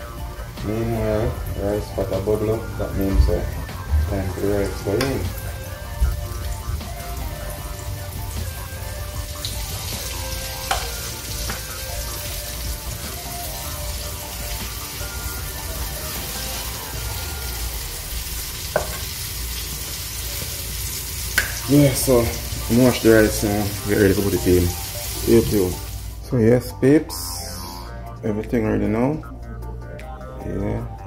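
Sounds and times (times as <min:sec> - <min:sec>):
fish sizzling in oil: 0:03.8 - 0:26.2.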